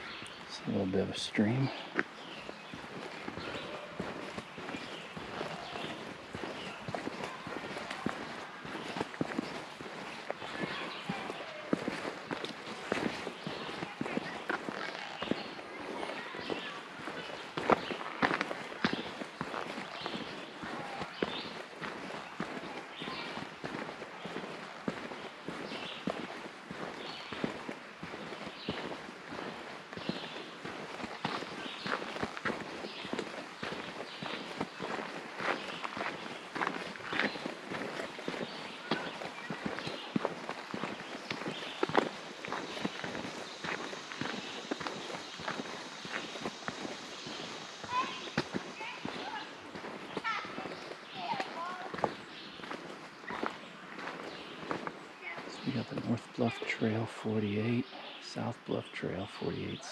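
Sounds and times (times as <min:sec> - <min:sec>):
footsteps crunching on forest trail: 0:00.0 - 0:59.9.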